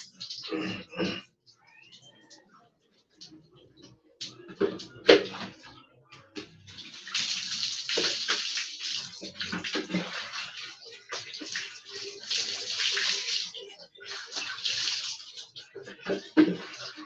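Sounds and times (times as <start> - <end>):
water splashing on concrete floor: 6.4 - 17.0.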